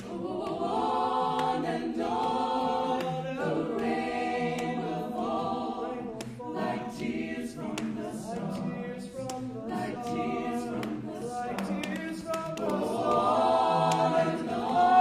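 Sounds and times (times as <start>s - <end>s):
vocal ensemble singing in harmony: 0.0s - 15.0s.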